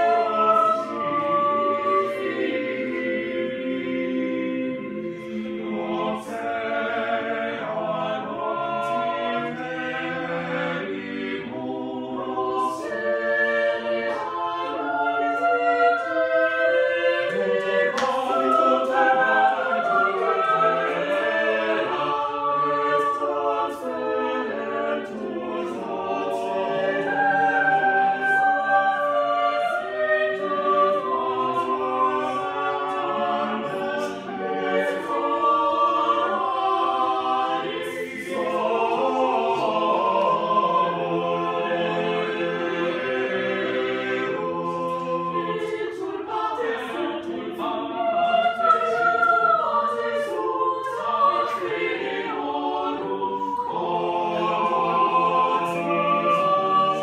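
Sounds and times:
choir singing a cappella: 0.0s - 57.0s.

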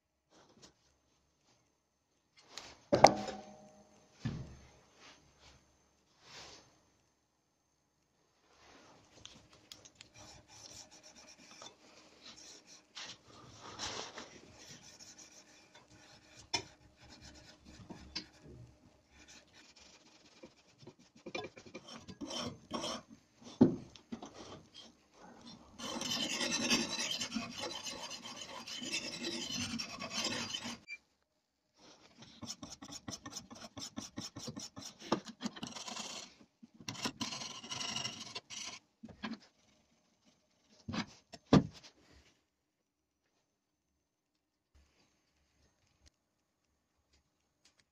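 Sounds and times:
sharpening stone scraping axe edge: 25.8s - 30.9s.

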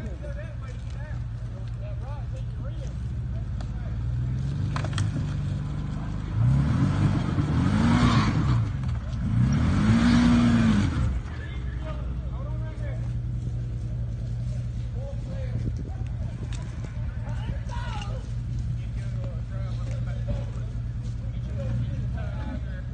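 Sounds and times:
utv engine idling and revving: 0.0s - 22.9s.

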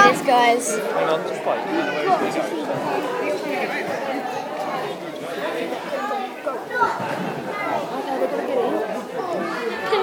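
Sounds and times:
babble of people talking: 0.0s - 10.0s.

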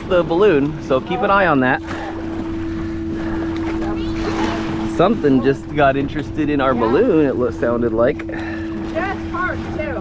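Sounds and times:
boat motor humming: 0.0s - 10.0s
water noise: 0.0s - 10.0s
wind: 0.0s - 10.0s.

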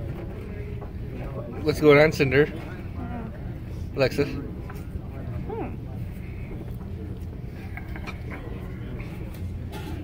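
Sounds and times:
faint distant voices: 0.0s - 10.0s
steady low hum: 0.0s - 10.0s.

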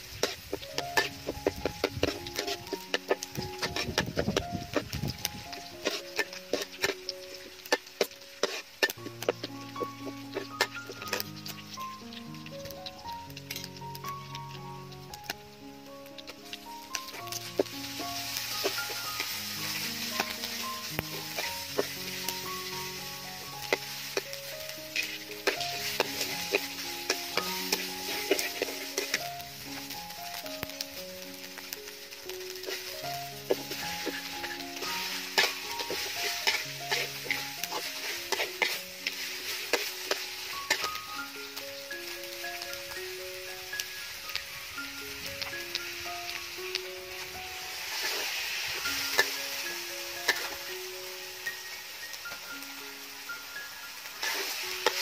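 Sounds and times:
metal spatula scraping wok: 0.0s - 12.3s, 12.9s - 14.4s, 16.2s - 30.6s, 32.5s - 42.4s, 47.1s - 50.7s, 54.2s - 55.0s
food sizzling in oil: 0.0s - 55.0s
melodic background music: 0.0s - 55.0s.

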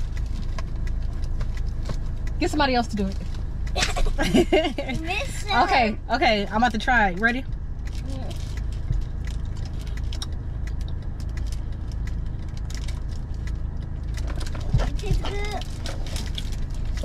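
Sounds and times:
car idling: 0.0s - 17.0s.

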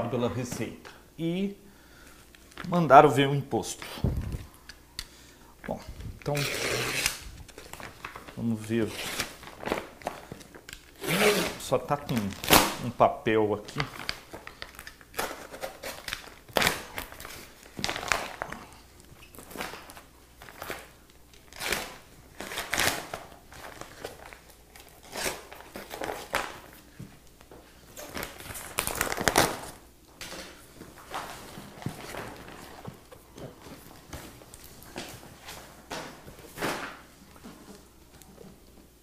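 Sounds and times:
paper wrapping crinkling and tearing: 6.0s - 12.9s, 13.6s - 26.9s, 27.9s - 35.5s.

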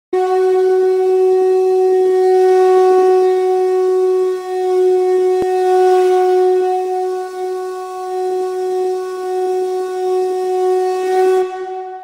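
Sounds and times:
steady horn-like note: 0.2s - 12.0s.

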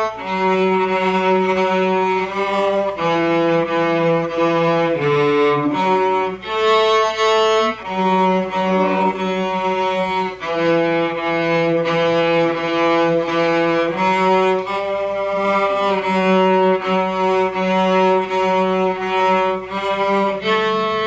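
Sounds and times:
cellos playing slow duet: 0.0s - 21.0s.

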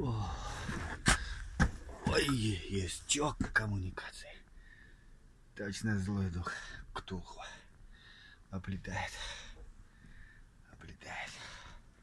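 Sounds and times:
man whispering: 2.1s - 4.6s, 5.6s - 7.8s, 8.5s - 9.6s, 10.6s - 11.8s.

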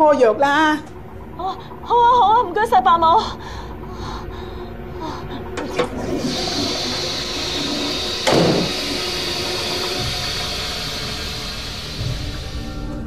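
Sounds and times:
toilet flushing: 5.5s - 13.0s.

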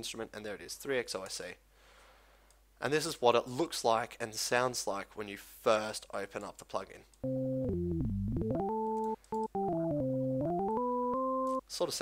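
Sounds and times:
organ-like synthesizer notes: 7.2s - 11.6s.

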